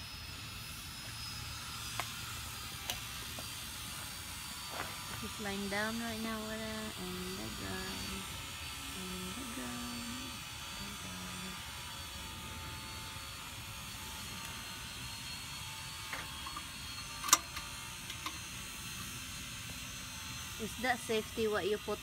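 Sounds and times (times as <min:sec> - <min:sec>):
steady background hum: 0:00.0 - 0:22.0.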